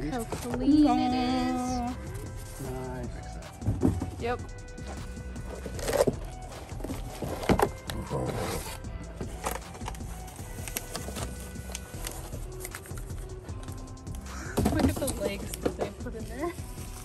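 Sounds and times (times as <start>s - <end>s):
background music: 0.0s - 17.0s
knocks and rustles of foam packaging: 4.8s - 13.0s, 14.5s - 16.1s.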